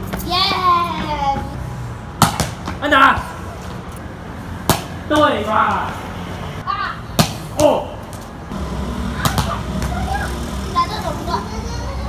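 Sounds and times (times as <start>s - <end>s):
children's voices: 0.2s - 1.6s, 9.2s - 12.0s.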